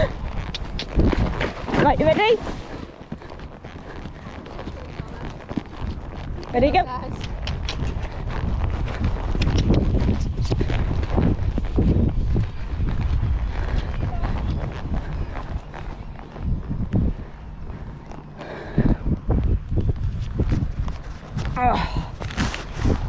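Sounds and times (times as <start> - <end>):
horse hoofbeats on sand: 0.0 - 23.0.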